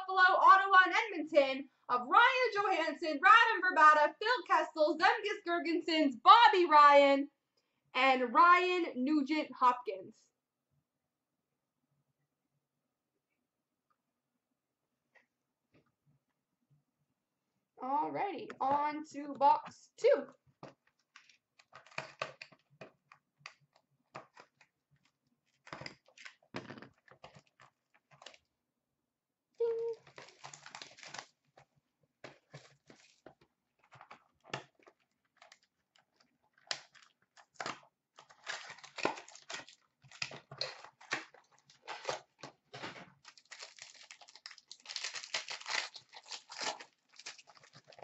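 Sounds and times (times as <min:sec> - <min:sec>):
wrappers crinkling and tearing: 0:29.8 - 0:48.0.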